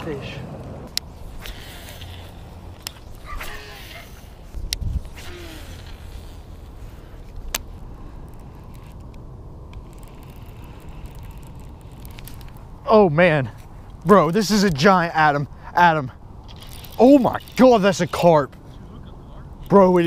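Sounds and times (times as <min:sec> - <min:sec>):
sharp clicks: 0:00.9 - 0:03.6, 0:07.2 - 0:12.7
fishing reel rumble: 0:01.0 - 0:12.9, 0:13.9 - 0:18.5, 0:19.6 - 0:20.0.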